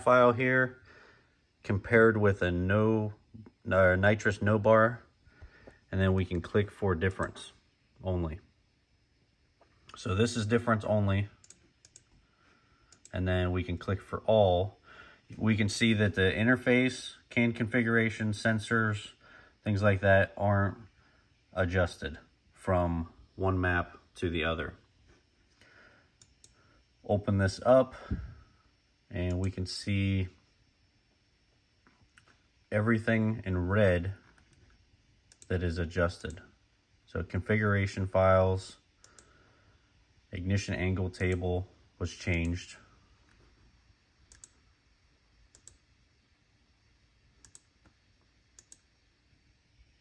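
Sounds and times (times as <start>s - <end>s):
computer mouse clicks: 11.4s - 12.2s, 12.9s - 13.1s, 35.3s - 35.5s, 39.0s - 39.3s, 41.2s - 41.4s, 44.3s - 44.6s, 45.5s - 45.8s, 47.4s - 48.0s, 48.6s - 48.9s.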